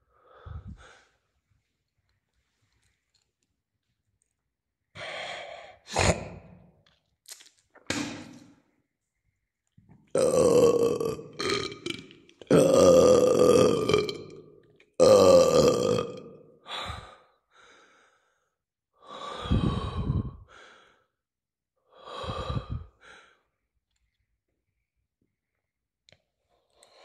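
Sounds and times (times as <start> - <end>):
person making loud vocal bursts: 10.2 - 14.2.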